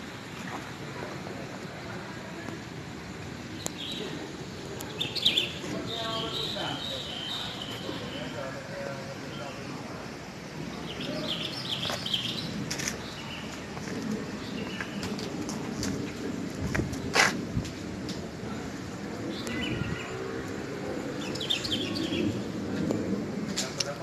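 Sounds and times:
low background murmur: 0.0 - 24.0
small birds chirping: 3.5 - 9.8, 10.6 - 16.1, 19.1 - 22.6.

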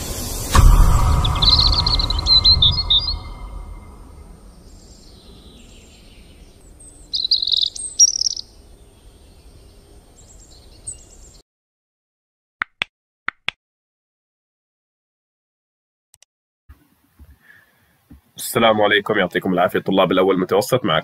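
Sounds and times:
low rumble of a boom: 0.0 - 6.7
birds chirping: 1.1 - 11.4.

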